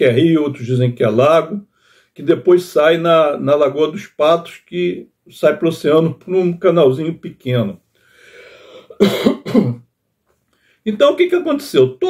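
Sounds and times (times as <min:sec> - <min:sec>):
man clearing his throat: 0:08.9 - 0:09.9.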